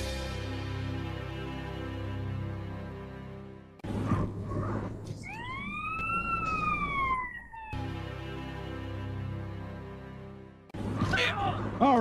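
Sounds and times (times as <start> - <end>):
siren-like wail: 4.5 - 8.2.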